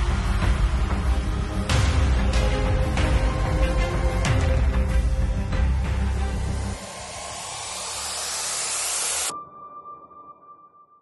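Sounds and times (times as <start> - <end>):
hissing noise riser: 6.0 - 9.3.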